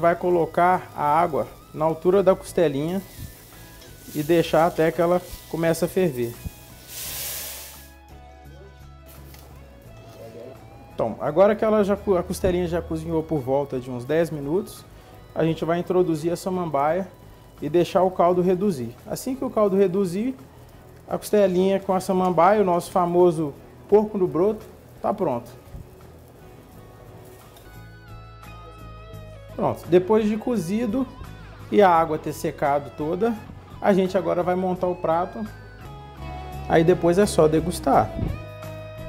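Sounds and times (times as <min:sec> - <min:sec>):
quiet background music: 0:00.0 - 0:39.0.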